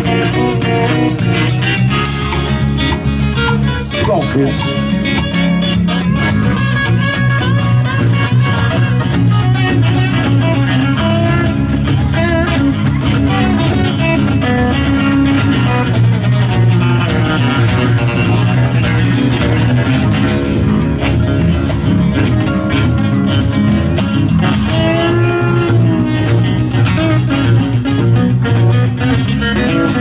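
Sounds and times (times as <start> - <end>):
electric bass line: 0.0 - 30.0
steady rhythmic beat: 0.0 - 30.0
strummed acoustic guitars: 0.0 - 30.0.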